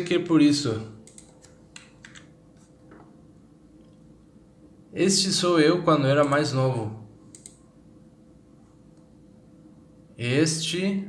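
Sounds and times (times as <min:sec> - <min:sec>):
steady low hum: 0:00.0 - 0:11.0
soft scattered clicks: 0:01.0 - 0:02.7, 0:07.3 - 0:07.7.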